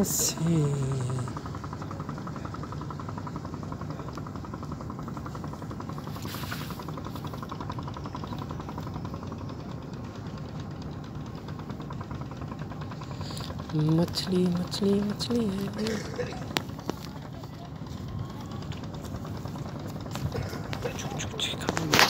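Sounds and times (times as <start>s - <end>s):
boat engine running: 0.0s - 22.0s.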